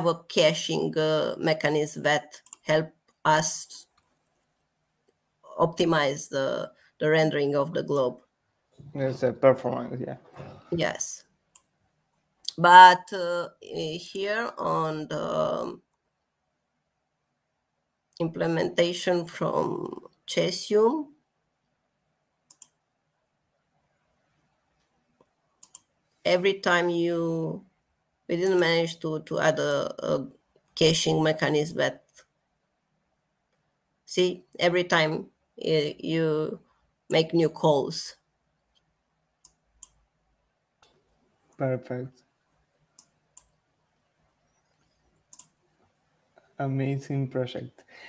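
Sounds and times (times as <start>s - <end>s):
computer mouse clicking: 2.3s - 2.6s, 22.5s - 22.8s, 25.6s - 25.9s, 44.6s - 45.6s.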